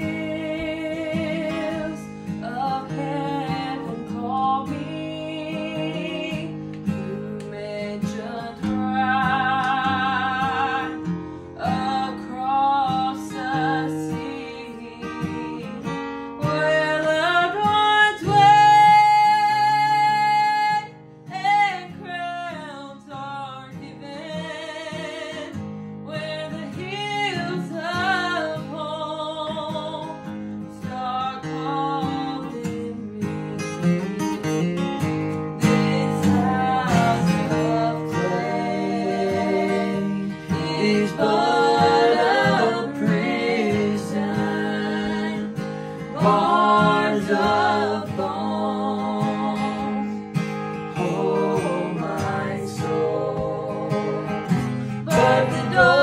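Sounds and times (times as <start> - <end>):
woman singing gospel: 0.0 - 33.9, 35.6 - 50.2, 50.9 - 54.2, 55.0 - 56.0
strummed acoustic guitar: 0.0 - 56.0.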